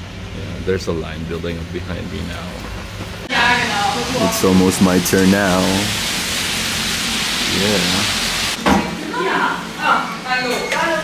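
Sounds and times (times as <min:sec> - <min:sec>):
steady hiss: 0:00.0 - 0:08.6
voices at a shop counter: 0:00.3 - 0:06.1, 0:07.4 - 0:11.0.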